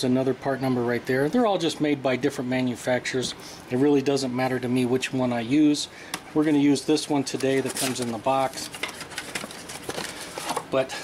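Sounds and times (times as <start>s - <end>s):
cardboard box rustling: 7.4s - 10.7s.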